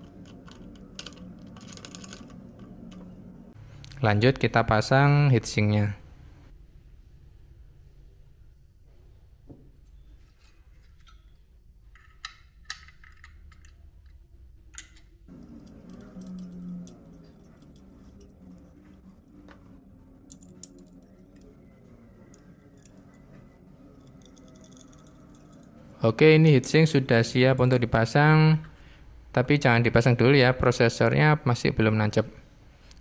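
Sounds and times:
metal brackets clicking and clinking: 0:00.0 - 0:03.0, 0:14.8 - 0:19.5, 0:20.2 - 0:21.6, 0:22.3 - 0:25.9.

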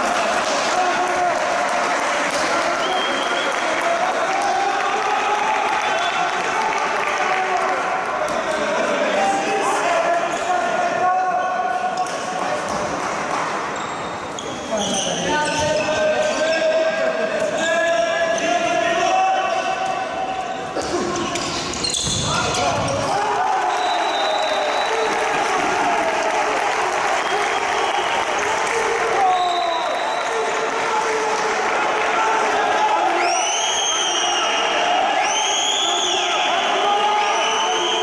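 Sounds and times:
people shouting in sports hall: 0:00.0 - 0:13.0, 0:14.7 - 0:38.0
ball bouncing on indoor court: 0:20.7 - 0:23.2.

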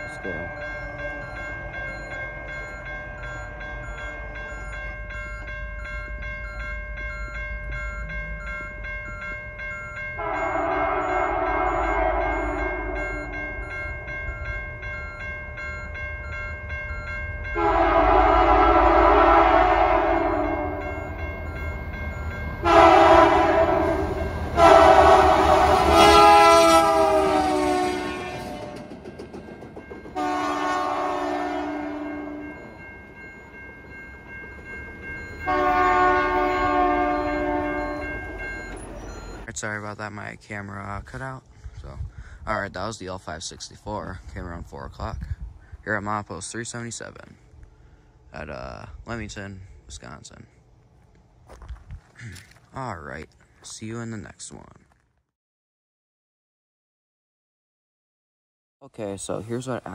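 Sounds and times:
truck reversing alarm beeping: 0:00.0 - 0:40.6
locomotive engine rumble: 0:00.0 - 0:46.4
locomotive air horn blasts: 0:10.2 - 0:13.4, 0:17.6 - 0:21.1, 0:22.6 - 0:28.9, 0:30.2 - 0:32.6, 0:35.4 - 0:38.4.

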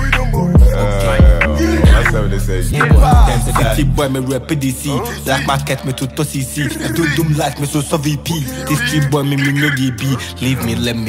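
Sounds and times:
deep sustained bass: 0:00.0 - 0:05.8
man rapping over a beat: 0:00.0 - 0:11.0.

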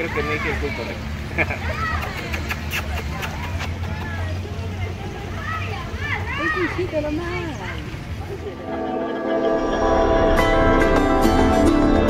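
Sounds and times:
steady low rumble: 0:08.2 - 0:12.0.

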